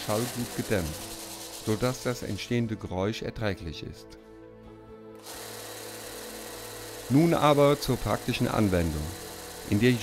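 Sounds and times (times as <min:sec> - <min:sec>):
belt sander motor humming: 0:00.0 - 0:02.4, 0:05.2 - 0:10.0.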